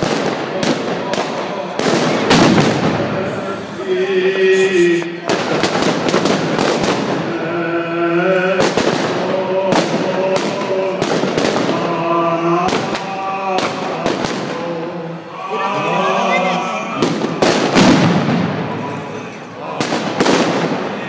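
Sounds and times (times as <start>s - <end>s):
person chanting long notes: 0.0s - 6.1s, 7.0s - 17.6s
firecrackers banging: 0.0s - 21.0s.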